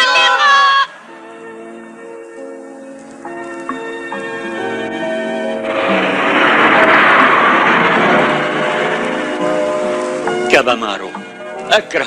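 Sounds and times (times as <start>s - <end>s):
background music: 0.0s - 12.0s
cartoon car rushing past: 5.6s - 10.5s.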